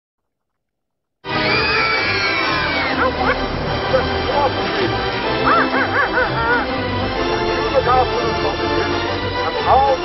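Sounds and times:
music playing: 1.2 - 10.0
young children laughing and calling: 5.3 - 6.8.

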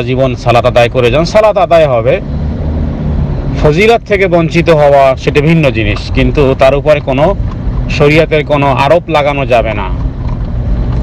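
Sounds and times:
low background rumble: 0.0 - 11.0
man speaking: 3.6 - 10.0.

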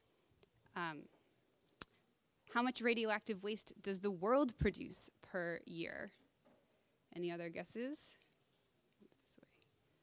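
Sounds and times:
faint whisper: 9.1 - 9.7.

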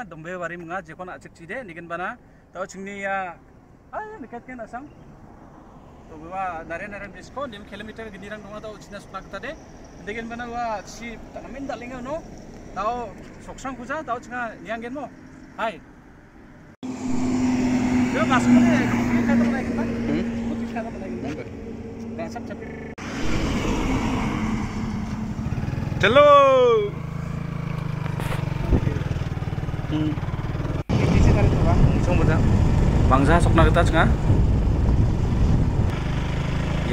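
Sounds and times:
vehicle engine hum and road noise: 3.4 - 36.9
loud falling-pitch tone: 16.8 - 20.6, 21.7 - 27.0
wind on microphone: 30.9 - 36.0.

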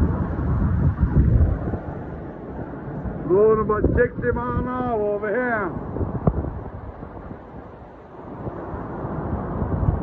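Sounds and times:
strong wind buffeting microphone: 0.0 - 10.0.

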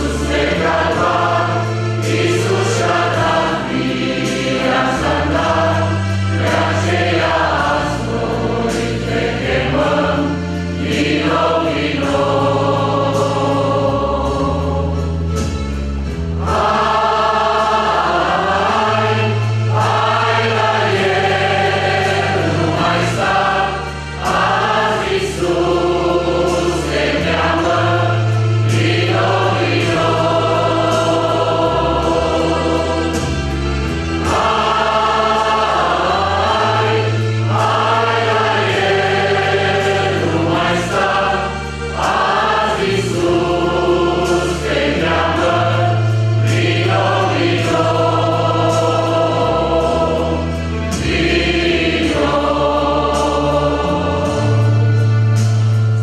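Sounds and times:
low bass accompaniment: 0.0 - 56.0
mixed choir singing a hymn: 0.0 - 56.0.

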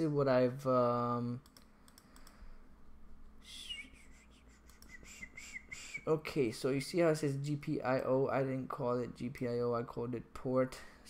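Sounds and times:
faint clicks: 1.4 - 2.4
person whistling: 3.4 - 6.1.

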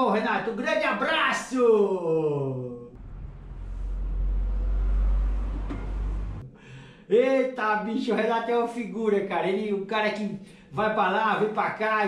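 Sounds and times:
deep low rumble: 2.9 - 6.5.

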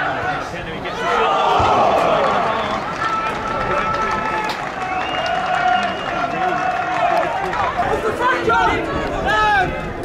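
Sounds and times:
outdoor ground noise: 0.0 - 10.0
players and spectators calling out: 0.0 - 10.0.

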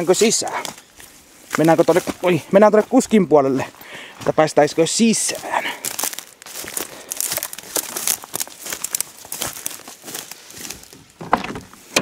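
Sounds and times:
twigs crackling and snapping: 0.0 - 3.1, 5.3 - 12.0
footsteps through dry brush: 0.0 - 11.9.

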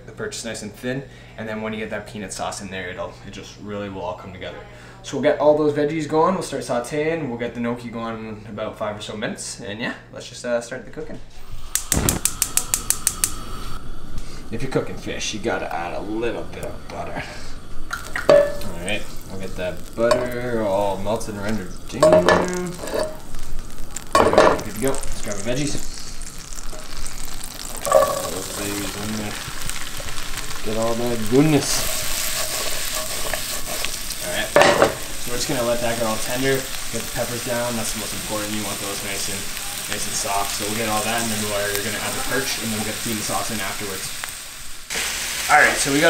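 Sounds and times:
vegetables sizzling in a frying pan: 11.3 - 46.0
gas burner whoosh: 11.4 - 42.0
gas stove igniter clicking: 11.6 - 13.5
vegetables clattering against pan: 24.1 - 25.0, 27.8 - 28.5.

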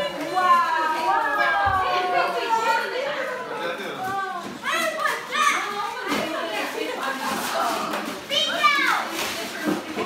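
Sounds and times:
chatter of children and adults: 0.0 - 10.0.

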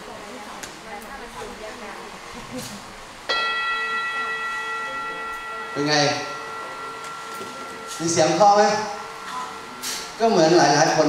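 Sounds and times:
metal singing bowl ringing: 3.3 - 11.0.

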